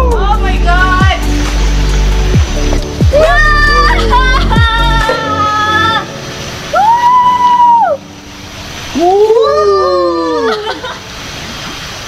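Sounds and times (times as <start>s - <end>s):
woman screaming: 3.1s - 6.1s, 6.7s - 8.0s, 9.0s - 10.7s.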